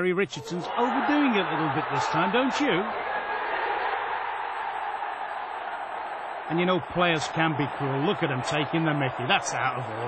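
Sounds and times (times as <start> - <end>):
stadium crowd cheering: 0.4 - 10.0.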